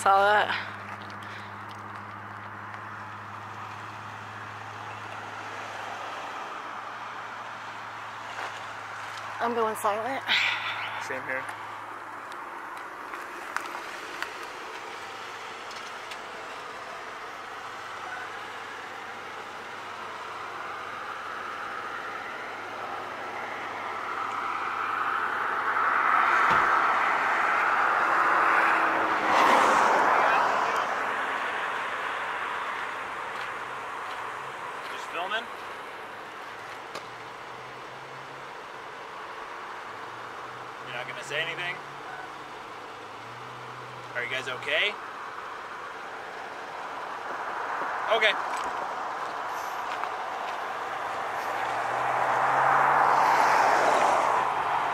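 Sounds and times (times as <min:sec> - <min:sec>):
car driving past: 0:00.5 - 0:54.9.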